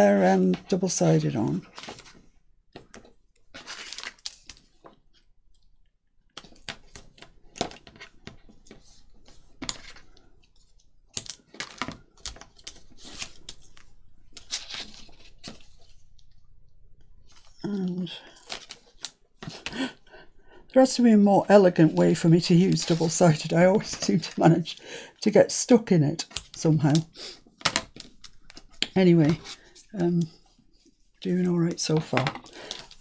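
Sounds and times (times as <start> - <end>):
paper being handled: 3.5 - 4.8, 10.7 - 16.1, 21.7 - 24.7.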